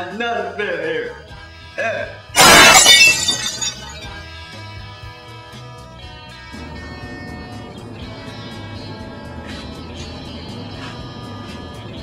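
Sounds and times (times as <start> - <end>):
loud crash with tinkling tail: 2.4 - 4.2.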